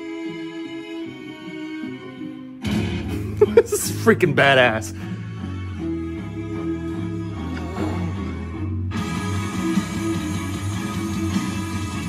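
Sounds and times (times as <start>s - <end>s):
rock song on small radio speaker: 0.0s - 7.4s, 8.4s - 12.0s.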